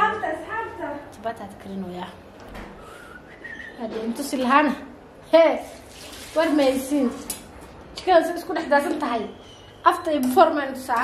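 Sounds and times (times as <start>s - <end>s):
soft whistling notes: 2.8s - 3.8s.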